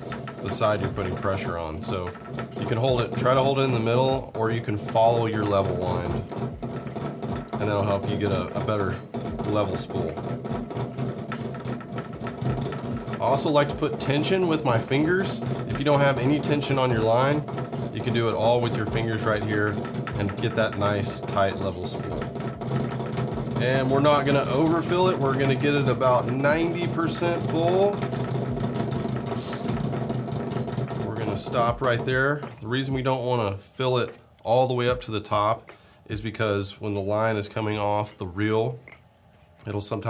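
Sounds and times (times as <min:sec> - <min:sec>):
fishing reel gears whirring: 0:00.0 - 0:33.1.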